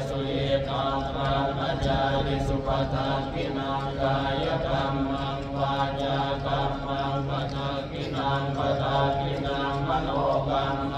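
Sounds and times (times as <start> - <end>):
monotone chanting over loudspeakers: 0.0 - 10.9.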